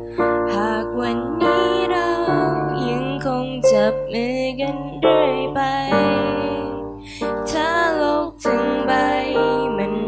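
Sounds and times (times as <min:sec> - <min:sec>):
digital piano: 0:00.0 - 0:10.0
woman singing a slow ballad: 0:00.0 - 0:10.0.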